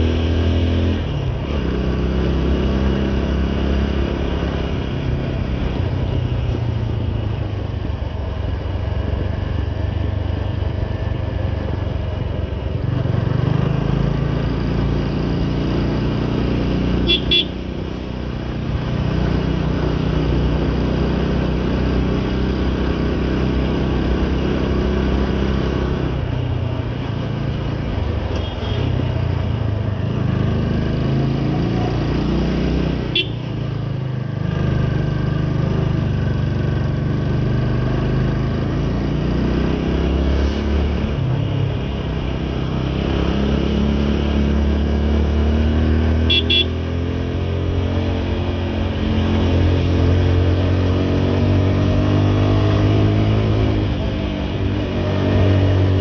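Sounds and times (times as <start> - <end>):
motorcycle engine running: 2.8 - 28.8, 46.0 - 50.4.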